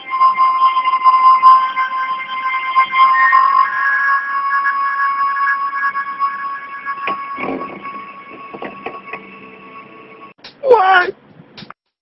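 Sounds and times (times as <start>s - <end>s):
loud sliding tone: 0.0s - 10.3s
electronic alarm tone: 0.0s - 10.4s.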